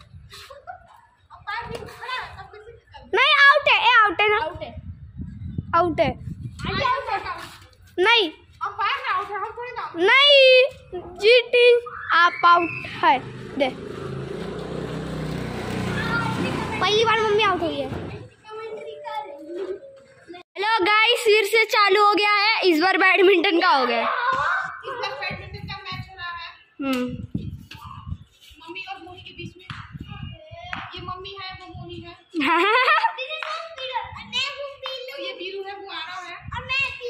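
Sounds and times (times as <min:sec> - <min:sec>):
child shouting: 0:03.2 - 0:04.2, 0:15.9 - 0:17.9, 0:23.5 - 0:25.4
motor scooter engine running: 0:13.2 - 0:17.7.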